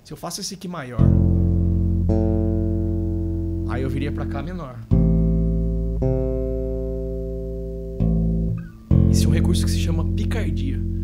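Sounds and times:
electric bass chord ringing: 1.0s - 11.0s.

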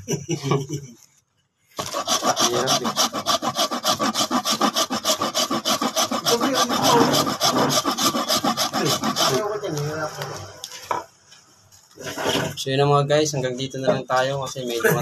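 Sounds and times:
salt grating rasping: 1.8s - 9.6s.

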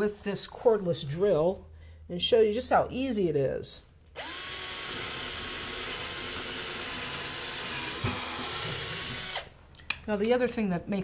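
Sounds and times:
cordless drill whining into wood: 4.2s - 9.5s
drill knock: 4.2s - 9.5s.

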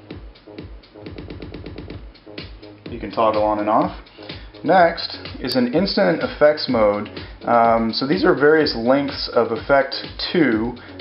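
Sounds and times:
electronic dance music stuttering: 0.1s - 4.0s.

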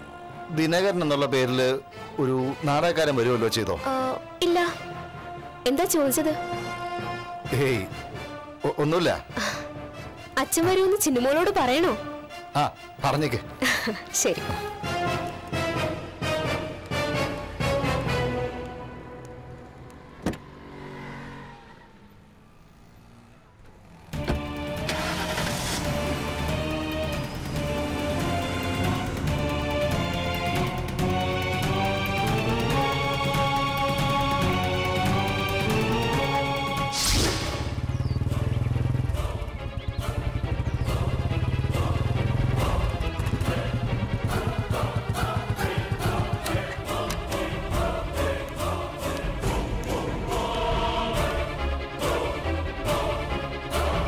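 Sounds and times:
wordless choir singing: 0.0s - 0.9s, 24.2s - 54.0s
orchestral accompaniment: 0.0s - 19.5s, 24.2s - 37.9s, 38.5s - 54.0s
soft background music: 0.0s - 20.1s, 23.2s - 54.0s
car door latch clicking open: 20.2s - 20.4s.

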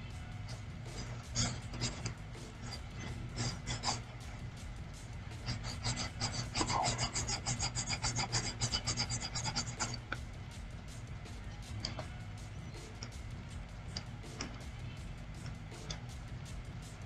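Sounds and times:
low electrical hum: 0.0s - 17.0s
stylus scratching on graphics tablet: 0.0s - 17.0s.

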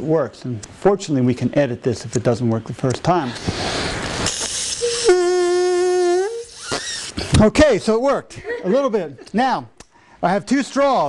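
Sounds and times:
straw duck call blown: 4.3s - 7.2s.

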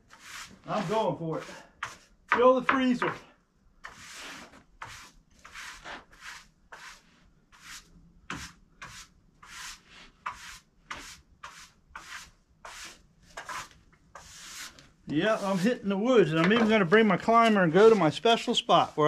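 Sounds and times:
sawdust brushed off board: 0.1s - 2.1s, 3.8s - 19.0s.

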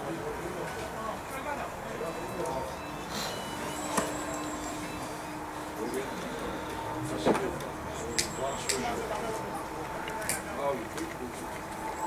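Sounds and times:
distant voices of players: 0.0s - 12.0s.

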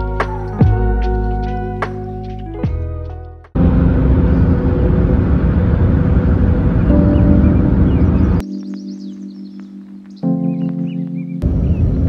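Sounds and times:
music: 0.0s - 4.1s, 6.9s - 11.8s
car road and wind rumble: 3.6s - 8.4s
soft background music: 6.7s - 12.0s
high chirps: 6.8s - 11.8s.

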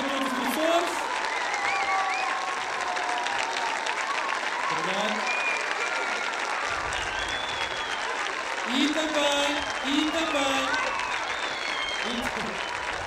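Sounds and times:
audience applauding: 0.0s - 13.0s.

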